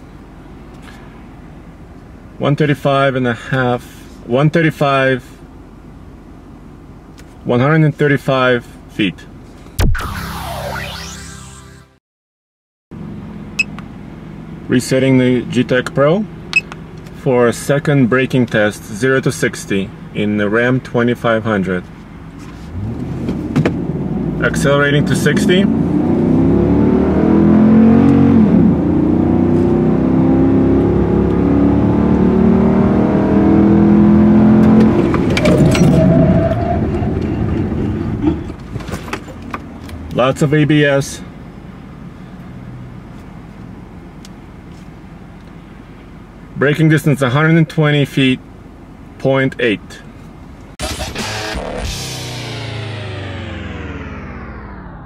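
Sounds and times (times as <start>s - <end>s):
in-cab road hum: 0.0s - 11.8s, 13.0s - 55.0s
electronic music sting: 9.8s - 12.0s, 50.8s - 55.0s
truck engine accelerating: 9.8s - 12.0s, 22.4s - 40.1s, 50.8s - 55.0s.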